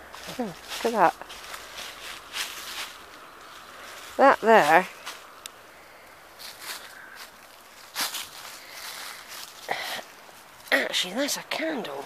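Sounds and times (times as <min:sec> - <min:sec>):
footsteps on dry leaves: 0:00.0 - 0:05.4, 0:06.2 - 0:12.0.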